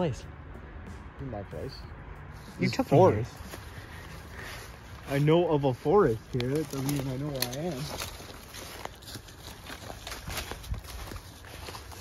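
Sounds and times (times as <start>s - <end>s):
footsteps through dry leaves: 2.3s - 12.0s.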